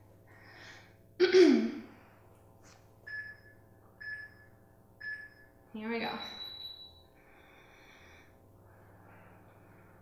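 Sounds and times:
faint two-note electronic beeps: 0:06.0 - 0:07.0.

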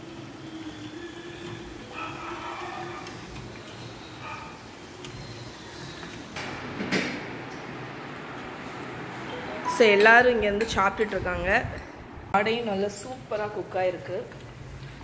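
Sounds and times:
oil sizzling while deep-frying: 0:00.0 - 0:06.4, 0:13.0 - 0:15.0.

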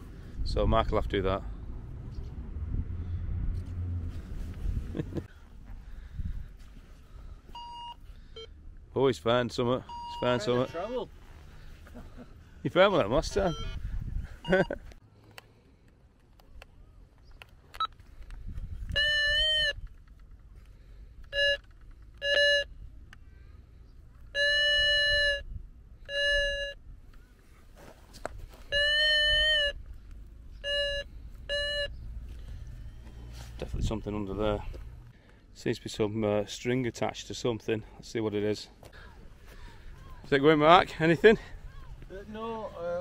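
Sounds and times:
metal detector beeping: 0:07.5 - 0:08.6, 0:09.8 - 0:10.8, 0:13.2 - 0:13.8, 0:18.9 - 0:19.9, 0:21.3 - 0:22.8, 0:24.3 - 0:26.8, 0:28.6 - 0:29.8, 0:30.5 - 0:32.0.

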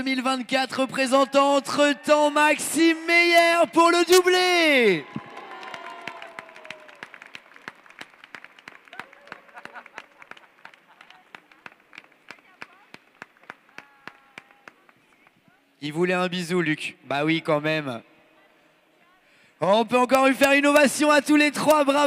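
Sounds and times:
audience applauding: 0:04.9 - 0:15.0.

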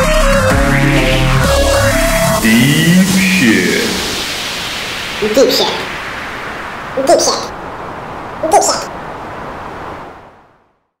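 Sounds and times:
rushing noise hiss: 0:00.0 - 0:11.0.

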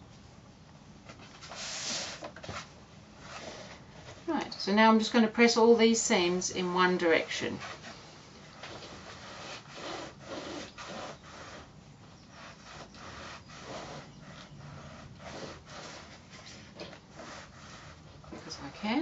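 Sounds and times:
iron swishing over fabric: 0:08.6 - 0:19.0.

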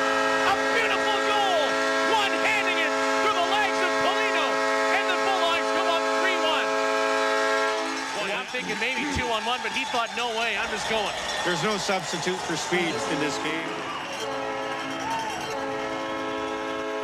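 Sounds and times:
crowd cheering: 0:00.0 - 0:17.0
goal horn: 0:00.0 - 0:17.0.

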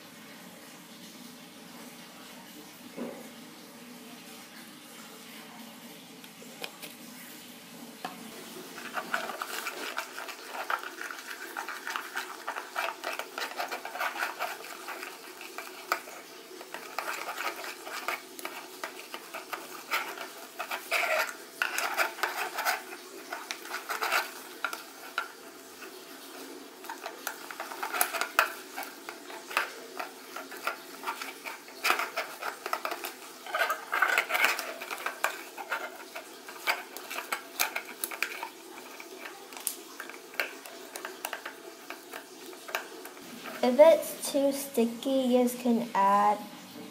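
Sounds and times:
spatula stirring slime in bowl: 0:08.2 - 0:46.2.

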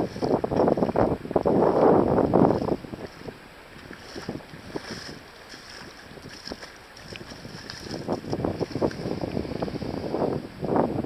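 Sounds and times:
small waves lapping on sand: 0:00.0 - 0:10.5
wind gusting on microphone: 0:00.0 - 0:11.0.

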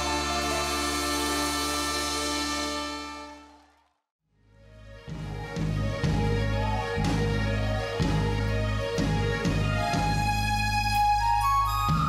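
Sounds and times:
band with brass holding chord: 0:00.0 - 0:03.6.

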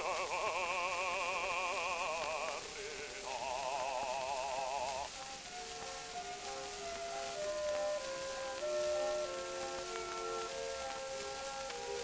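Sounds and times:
operatic bass voice singing: 0:00.0 - 0:05.1
record surface hiss and crackle: 0:00.0 - 0:12.0
orchestra playing: 0:05.3 - 0:11.3.

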